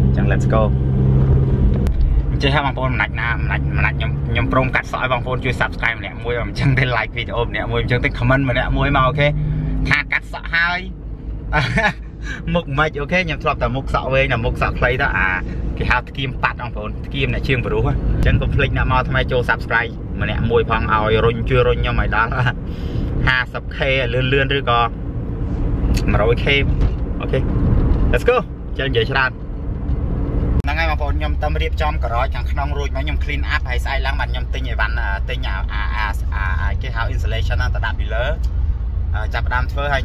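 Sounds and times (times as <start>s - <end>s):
car driving rumble inside cabin: 0.0s - 40.0s
man speaking: 0.1s - 0.8s, 2.3s - 10.9s, 30.7s - 38.4s, 39.2s - 40.0s
man talking: 0.1s - 0.8s, 2.3s - 10.9s, 11.6s - 22.6s, 23.2s - 24.9s, 26.0s - 27.4s, 28.1s - 29.3s, 30.6s - 38.5s, 39.2s - 40.0s.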